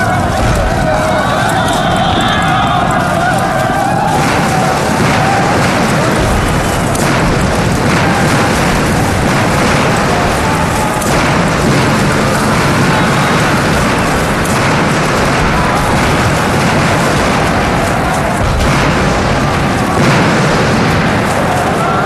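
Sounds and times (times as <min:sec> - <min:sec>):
explosions: 0:00.0 - 0:22.0
gunfire: 0:00.0 - 0:22.0.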